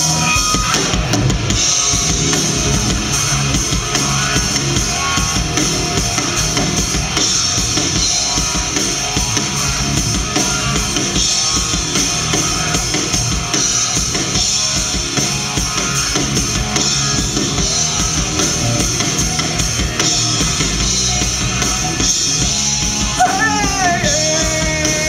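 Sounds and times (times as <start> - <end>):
drum kit steady beat: 0.0 - 25.0
electric guitars: 0.0 - 25.0.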